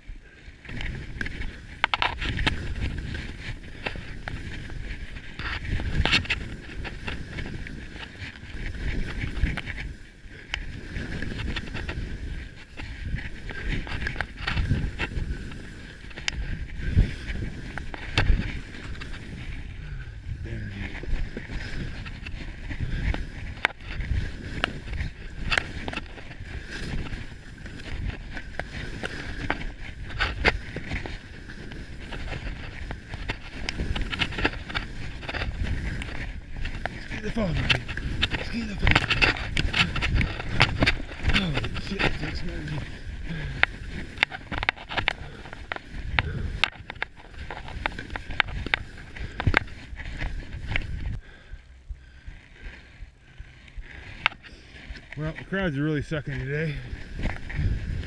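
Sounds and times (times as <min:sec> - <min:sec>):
skis scraping over snow: 0:00.0 - 0:58.0
wind rushing over microphone: 0:00.0 - 0:58.0.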